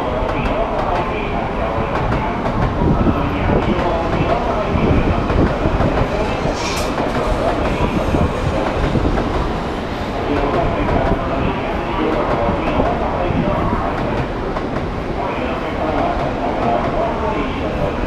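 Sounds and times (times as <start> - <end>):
train rumbling past: 0.0 - 18.0
short hiss: 6.5 - 7.1.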